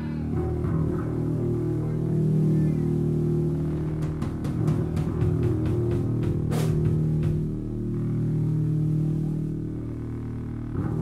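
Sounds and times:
bass guitar droning: 0:00.0 - 0:11.0
distorted electric guitar droning chord: 0:00.0 - 0:11.0.

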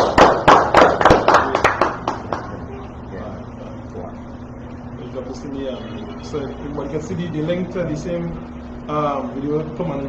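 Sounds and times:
hands clapping: 0:00.0 - 0:02.6.

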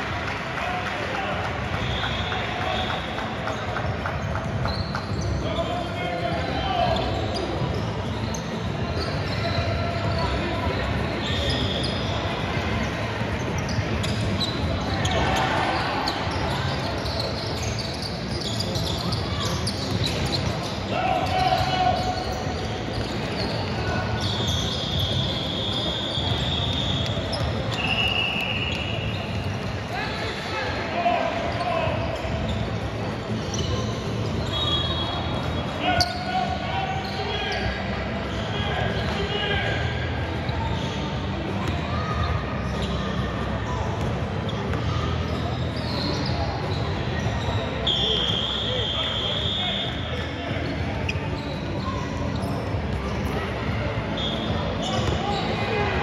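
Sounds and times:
sneakers squeaking on court: 0:01.4 - 0:56.0.

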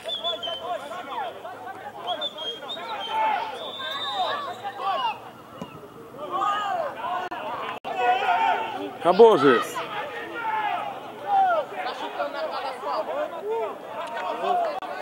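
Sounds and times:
men talking: 0:00.0 - 0:15.0
murmur of voices: 0:00.0 - 0:15.0.

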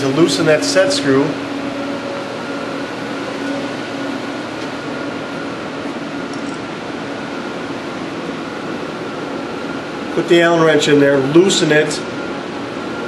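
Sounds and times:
ventilation hum: 0:00.0 - 0:13.0.

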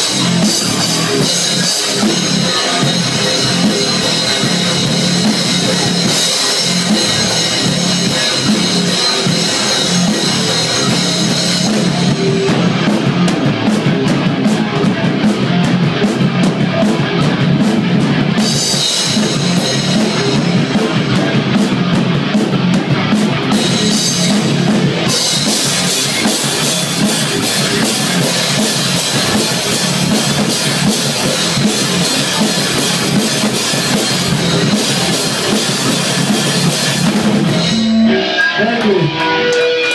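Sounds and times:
bass guitar: 0:00.0 - 0:39.9
distorted electric guitar: 0:00.0 - 0:39.9
fast heavy drumming: 0:00.0 - 0:39.9.

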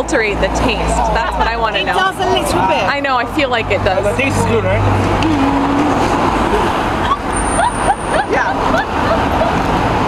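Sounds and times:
road traffic passing cars: 0:00.0 - 0:10.0
background voices: 0:00.4 - 0:10.0.

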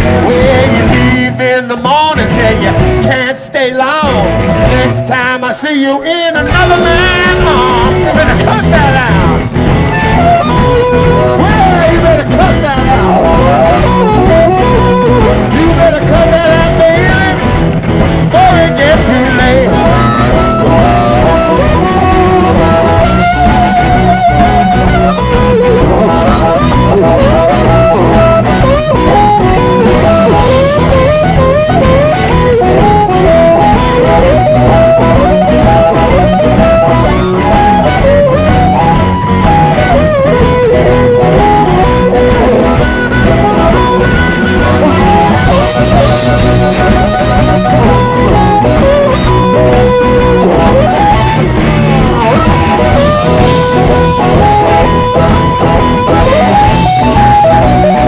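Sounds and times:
amplified harmonica solo: 0:00.0 - 0:58.0
electric blues band: 0:00.0 - 0:58.0.

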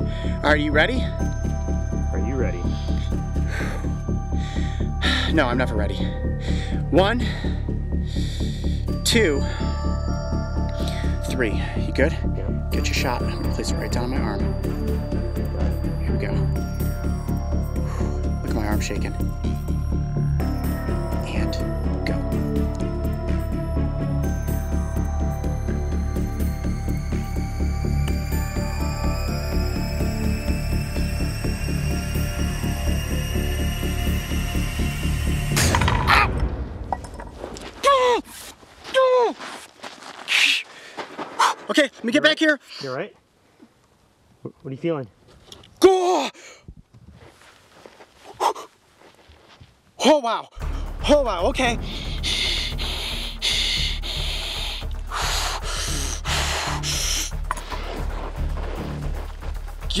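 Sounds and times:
suspenseful music with pulsing beat: 0:00.0 - 0:37.2, 0:50.6 - 1:00.0
man breathing hard hissing: 0:51.8 - 0:57.4.

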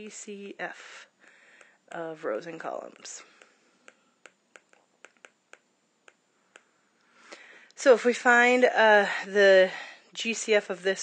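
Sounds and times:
stylus tapping on tablet screen: 0:03.3 - 0:06.8.

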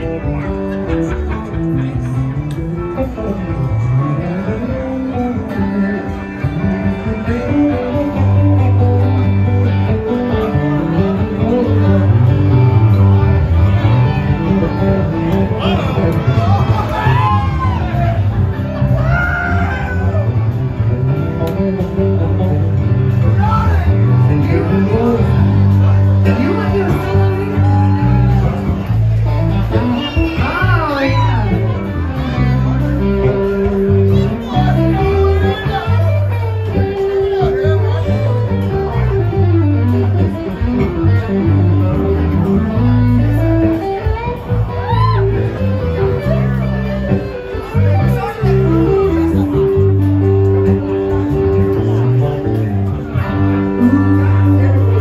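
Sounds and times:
bass guitar: 0:00.0 - 0:55.0
electric guitar: 0:00.0 - 0:55.0
live band music: 0:00.0 - 0:55.0.

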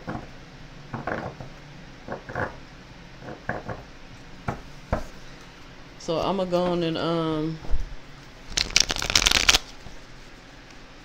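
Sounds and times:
cards being shuffled: 0:08.5 - 0:10.0.

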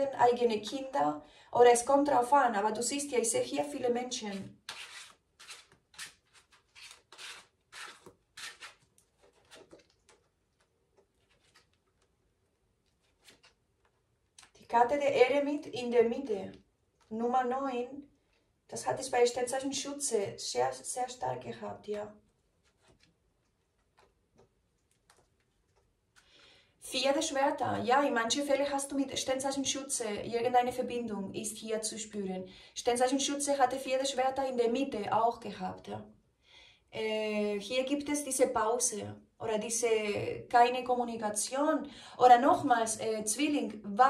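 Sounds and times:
cards being shuffled: 0:04.7 - 0:12.2, 0:12.8 - 0:14.6.

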